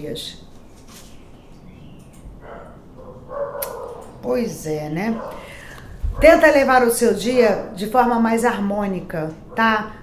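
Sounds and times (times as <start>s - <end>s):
sharp click: 3.6s - 4.1s.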